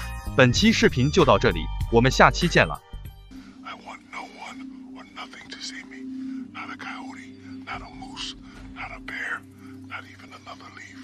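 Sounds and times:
background music: 0.0s - 11.0s
steady low drone: 1.6s - 11.0s
person whispering: 3.6s - 11.0s.

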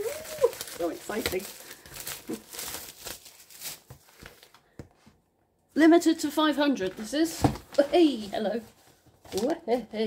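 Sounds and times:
plastic wrap crinkling and tearing: 0.0s - 4.8s, 9.2s - 10.0s.

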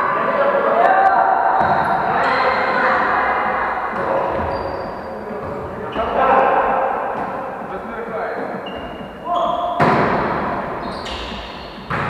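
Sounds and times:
players calling out: 0.0s - 12.0s
volleyball being struck: 8.9s - 10.6s, 11.2s - 12.0s.

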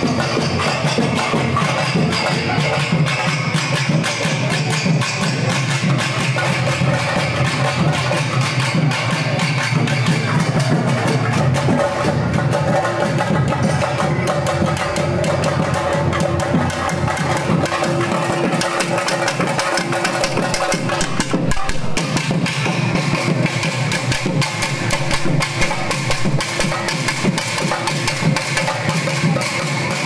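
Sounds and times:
drum ensemble playing fast rhythm: 0.0s - 30.0s.

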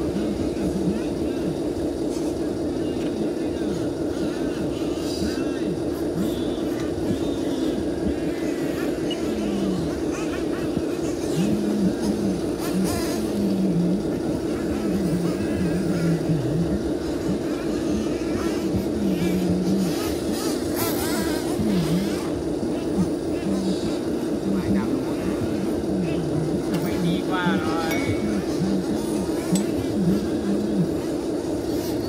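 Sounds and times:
model excavator motor drone: 0.0s - 32.0s.

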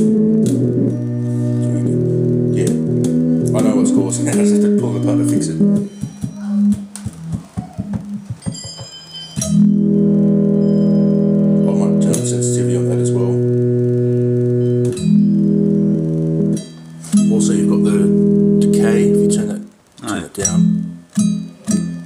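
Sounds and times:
buzzing synth tones: 0.0s - 22.0s.

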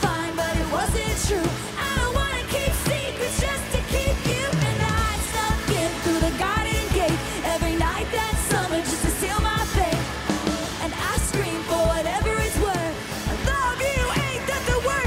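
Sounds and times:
live pop band playing: 0.0s - 15.0s
steady drum beat: 0.0s - 15.0s
woman singing into a microphone: 0.0s - 15.0s.

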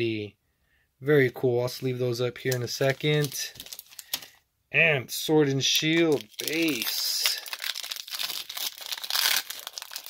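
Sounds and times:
foil wrapper tearing and crinkling: 2.6s - 4.3s, 6.0s - 10.0s.

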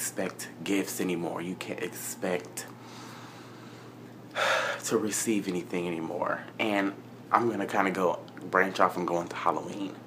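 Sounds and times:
man's sharp intake of breath: 2.8s - 4.8s.

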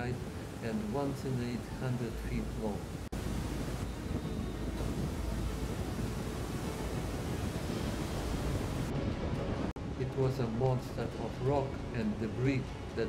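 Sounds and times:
wind noise on microphone: 0.0s - 10.0s
turbulent water rushing: 0.0s - 13.0s.

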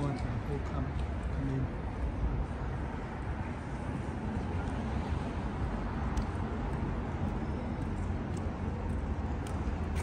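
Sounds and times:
city background rumble: 0.0s - 10.0s.

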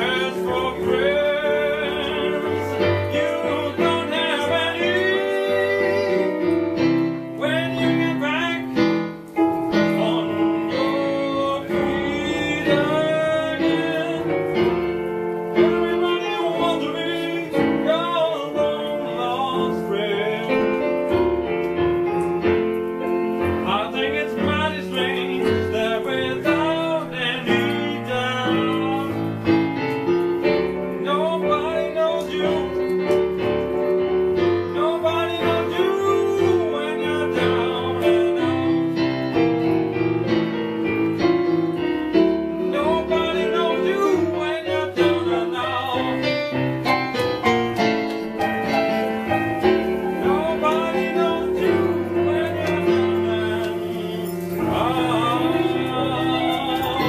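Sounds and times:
blues piano: 0.0s - 57.0s
man singing: 0.0s - 57.0s.

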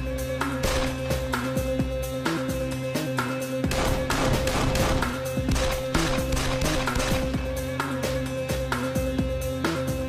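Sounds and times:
dramatic background music: 0.0s - 10.0s
pistol shots: 0.6s - 1.2s, 3.7s - 7.5s.

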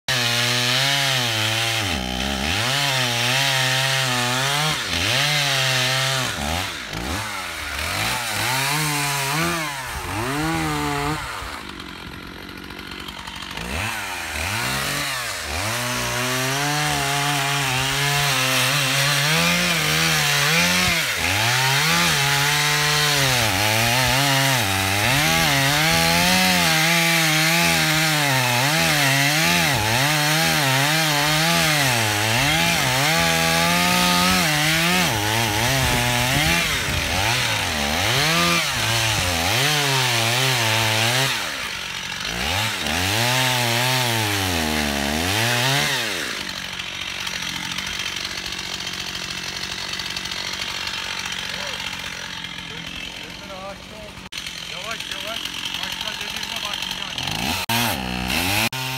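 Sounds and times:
chainsaw cutting wood: 0.0s - 58.9s.

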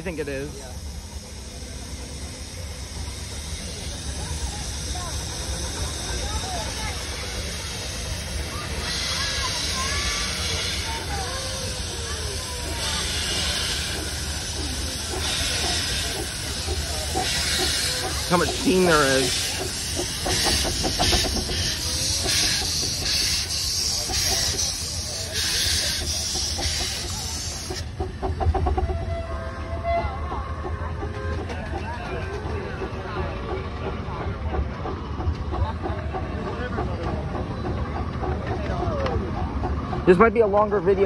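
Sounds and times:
passenger cars rumbling and clicking: 0.0s - 41.0s
people's voices: 0.0s - 41.0s
steam locomotive hissing: 0.0s - 41.0s.

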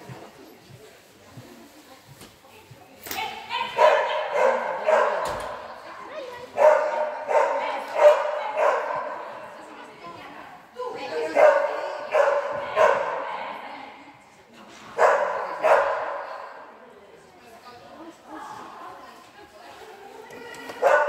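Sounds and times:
dog barking with echo: 3.7s - 5.3s, 6.6s - 9.2s, 11.3s - 13.3s, 15.0s - 16.3s.

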